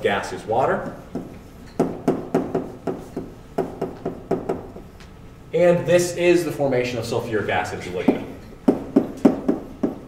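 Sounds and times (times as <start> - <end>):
chalk tapping on blackboard: 0.8 - 4.8, 8.0 - 10.0.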